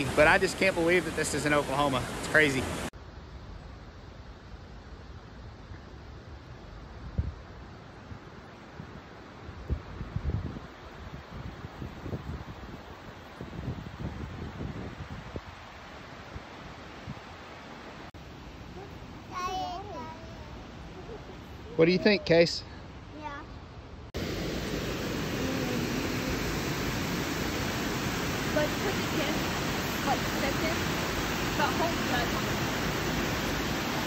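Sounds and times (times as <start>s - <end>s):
rushing water of falls: 0.0s - 6.9s, 7.6s - 23.4s, 24.1s - 34.0s.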